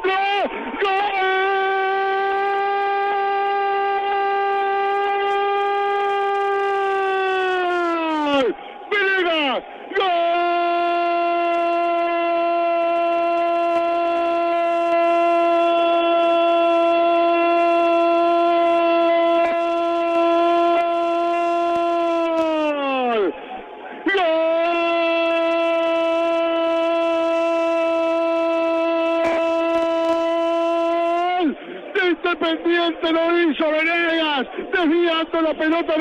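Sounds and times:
commentator shouting goal: 0.0 - 23.3, 24.0 - 36.0.

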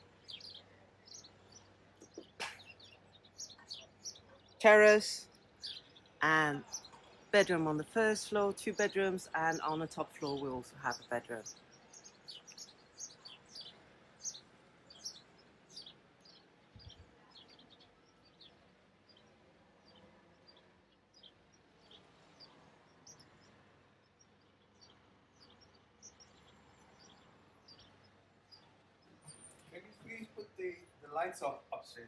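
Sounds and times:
small birds chirping: 0.0 - 32.0.

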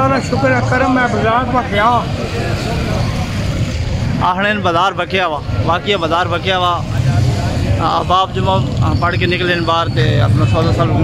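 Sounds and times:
man speaking: 0.0 - 3.2, 4.1 - 11.0
motorcycle engines passing: 0.0 - 11.0.

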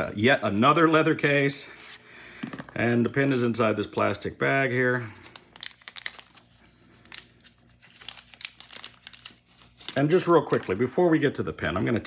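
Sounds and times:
plastic sleeve crinkling: 2.7 - 11.7.

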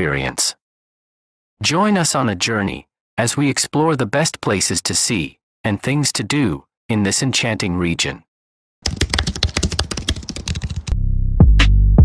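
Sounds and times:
fast sharp clicks: 8.8 - 10.9.

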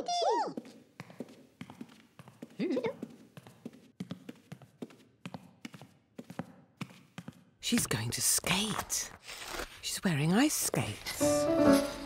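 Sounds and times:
clicking footsteps of hard soles: 0.1 - 8.0.

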